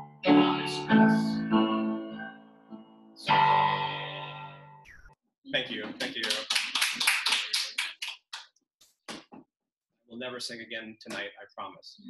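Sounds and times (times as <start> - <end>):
hand clapping: 5.8 - 9.4.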